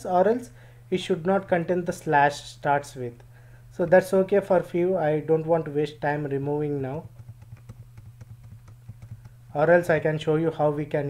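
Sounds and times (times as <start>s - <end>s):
rapid computer mouse clicks: 6.9s - 9.4s.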